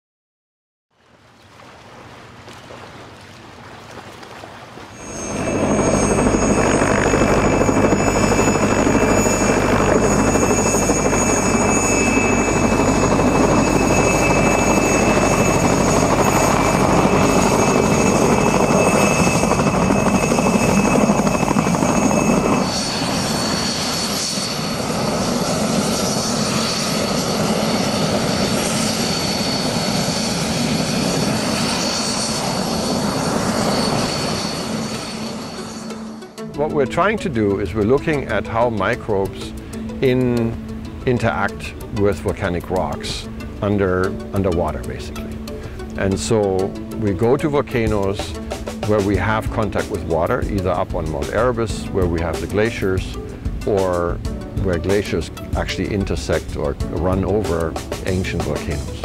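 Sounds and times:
helicopter engine and rotor: 5.0s - 59.0s
high steady whines: 5.0s - 59.0s.

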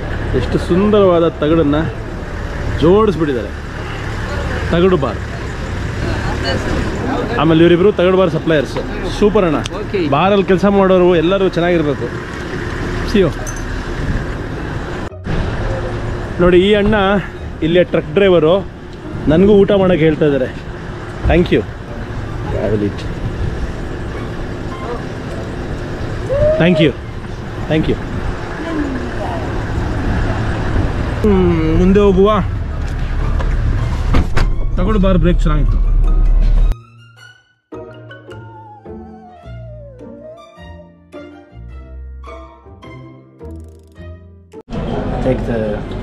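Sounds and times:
vehicle engine rumbling: 0.0s - 36.8s.

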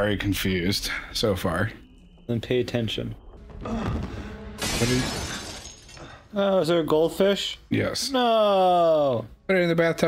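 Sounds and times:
glass shattering: 4.6s - 6.3s.

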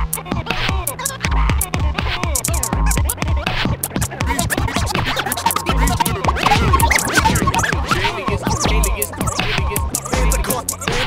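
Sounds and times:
hip-hop instrumental beat: 0.0s - 11.0s
turntable scratching: 0.0s - 11.0s.

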